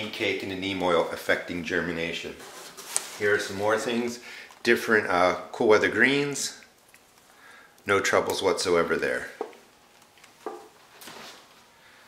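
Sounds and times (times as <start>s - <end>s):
soft rustle of plastic trays: 0.1s - 5.1s, 9.0s - 11.8s.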